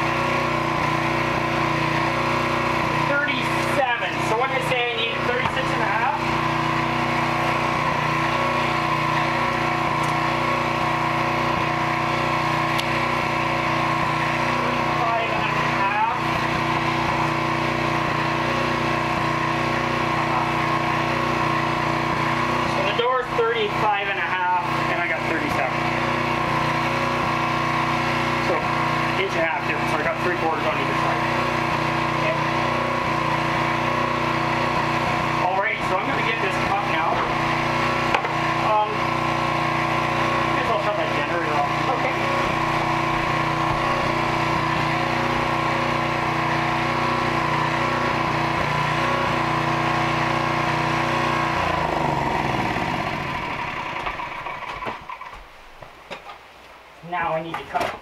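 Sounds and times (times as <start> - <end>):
motor humming and winding down: 0.0 - 55.3.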